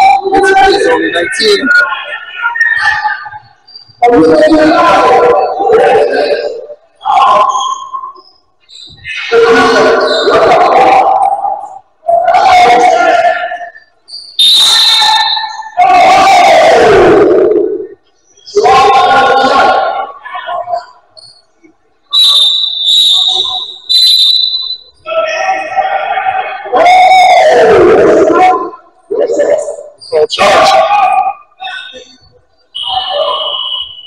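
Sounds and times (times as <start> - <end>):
referee whistle blasts: 13.8 - 15.8, 22.1 - 25.1, 32.7 - 34.0.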